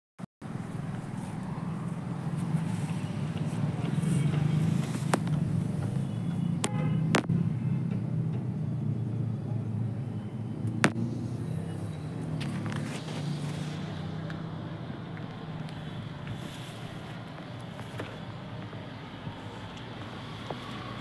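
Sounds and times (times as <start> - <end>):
low engine hum: 0.4 - 21.0.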